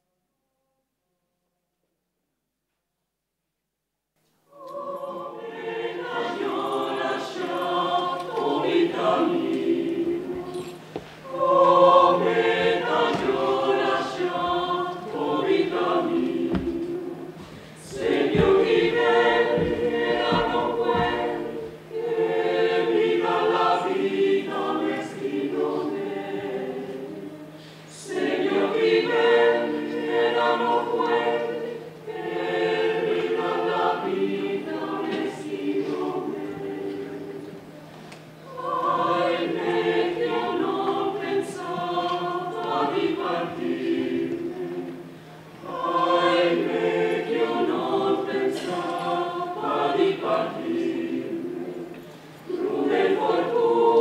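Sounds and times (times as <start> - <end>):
mixed choir singing a cappella: 4.5 - 54.0.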